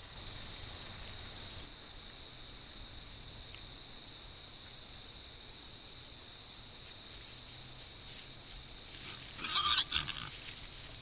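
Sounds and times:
harsh animal call: 9.0s - 10.4s.

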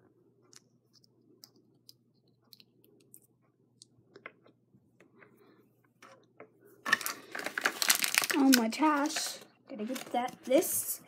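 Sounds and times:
plastic packaging crinkling: 6.8s - 10.7s.

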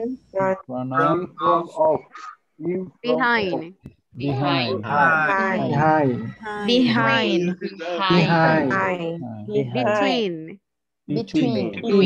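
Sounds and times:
voices repeating short words: 0.0s - 12.0s.

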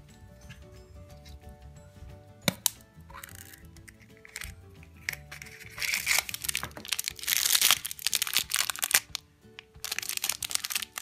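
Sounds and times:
background music: 0.0s - 11.0s
plastic egg handled: 0.0s - 11.0s
candy wrapper crinkling: 2.5s - 11.0s.

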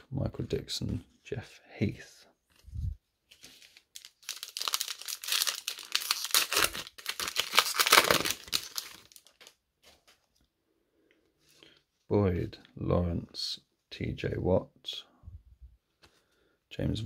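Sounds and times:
foil wrapper tearing and crinkling: 3.6s - 9.6s.

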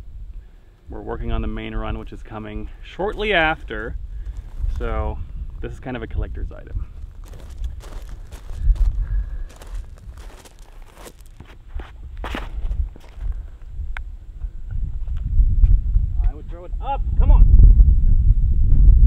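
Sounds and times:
wind rumble on microphone: 0.0s - 19.0s
footsteps on grass: 2.7s - 13.6s.

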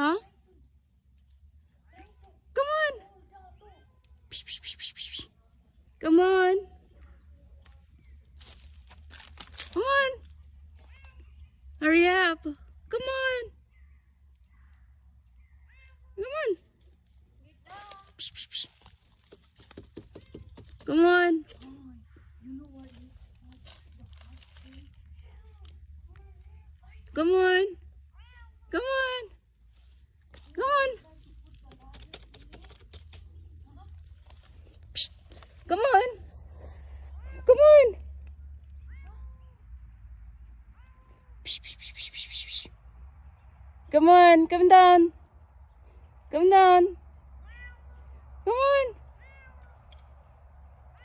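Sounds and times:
cat meowing: 47.4s - 48.0s, 49.2s - 50.0s.

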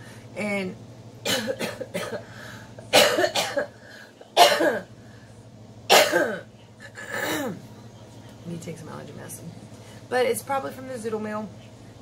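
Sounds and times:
woman coughing: 1.2s - 2.3s, 2.9s - 4.9s, 5.9s - 7.6s.

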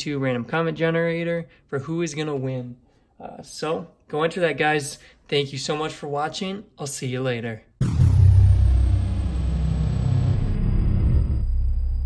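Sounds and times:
deep steady rumble: 7.8s - 12.0s
high tone sliding down: 7.8s - 12.0s.

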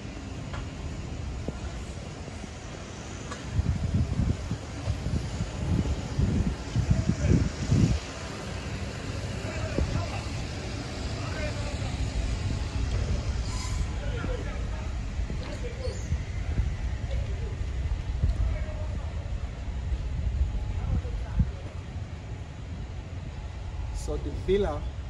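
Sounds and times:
outdoor background noise: 0.0s - 25.0s
wind buffeting microphone: 0.0s - 25.0s.

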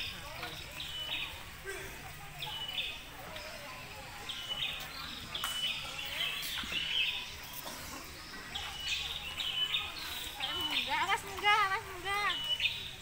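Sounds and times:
birds chirping: 0.0s - 13.0s
faint voices: 0.0s - 13.0s.

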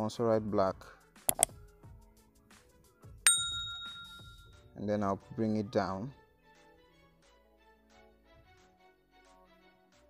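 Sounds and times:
notification bell ding: 3.3s - 4.6s.

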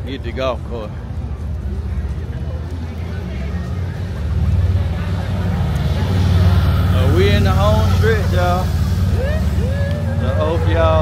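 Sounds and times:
faint voices: 0.0s - 11.0s
loud steady low rumble: 3.6s - 11.0s.

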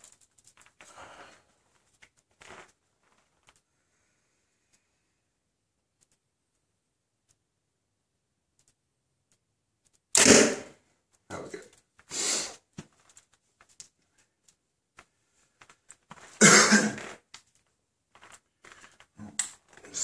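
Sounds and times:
rustles and small knocks: 0.0s - 3.7s, 12.7s - 20.0s.

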